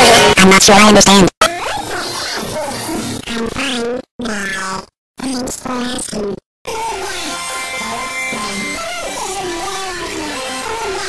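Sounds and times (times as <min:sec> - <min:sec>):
distorted cartoon cat voice: 0:00.0 - 0:11.0.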